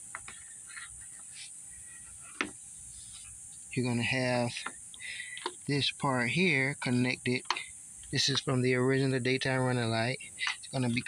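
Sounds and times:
faint high-pitched hiss: 0.0s - 11.0s.

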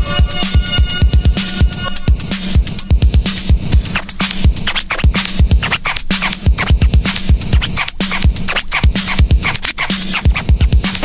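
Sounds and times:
drum beat with booming kicks: 0.0s - 11.0s
turntable scratching: 1.6s - 11.0s.

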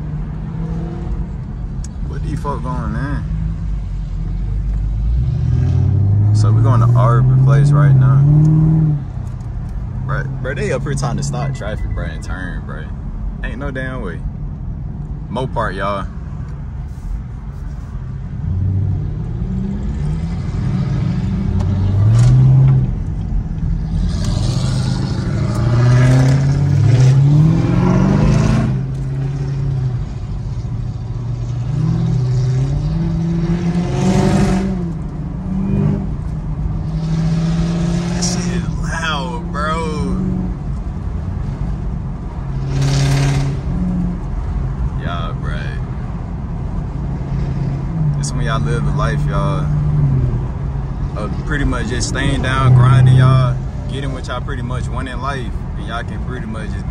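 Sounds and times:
car engine accelerating: 0.0s - 13.6s, 18.1s - 56.9s.

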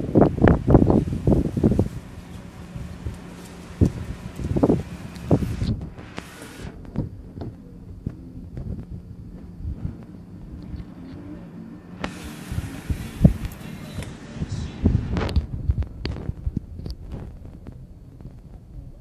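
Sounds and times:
steady low hum: 0.0s - 19.0s
wind buffeting microphone: 0.0s - 19.0s
footsteps: 1.3s - 11.2s.

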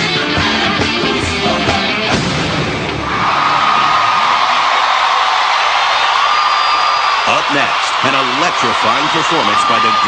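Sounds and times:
crowd cheering: 2.2s - 10.0s.

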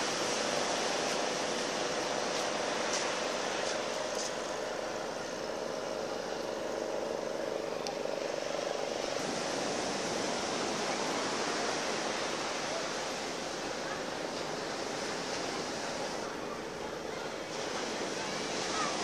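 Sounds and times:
murmur of voices: 3.3s - 19.0s
surf breaking on beach: 8.4s - 19.0s.

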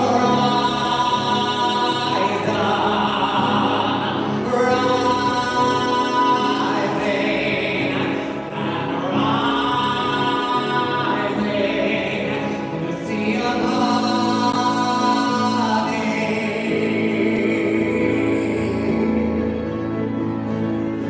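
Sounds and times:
person singing long notes: 0.0s - 20.6s.

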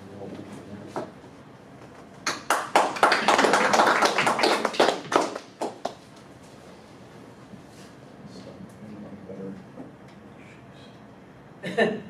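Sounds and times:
audience applauding: 2.3s - 6.0s.

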